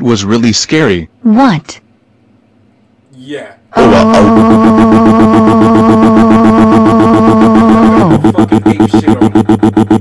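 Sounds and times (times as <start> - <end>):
pulsing buzzing synthesizer chord: 3.8 - 10.0.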